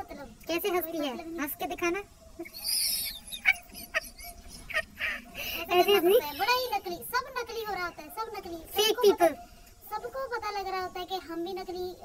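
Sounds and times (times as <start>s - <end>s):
woman's fake laugh: 2.4s - 5.4s.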